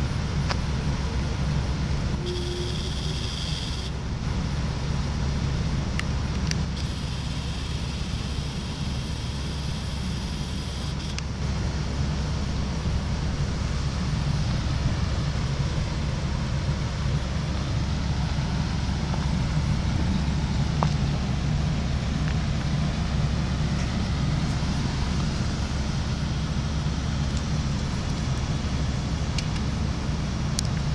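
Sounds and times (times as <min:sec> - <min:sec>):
helicopter rotor and engine rumble: 0:00.0 - 0:30.9.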